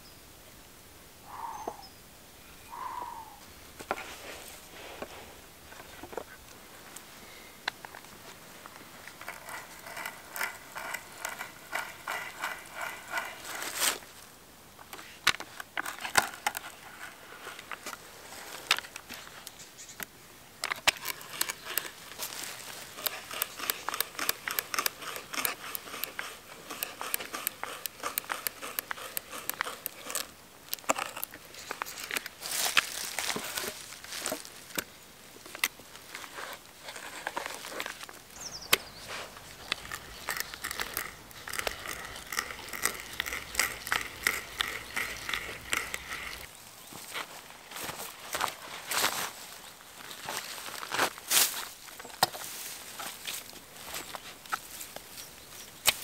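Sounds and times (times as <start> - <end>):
auger bit scraping wood: 8.0 - 14.2, 14.8 - 19.3, 20.6 - 34.8, 35.6 - 47.3.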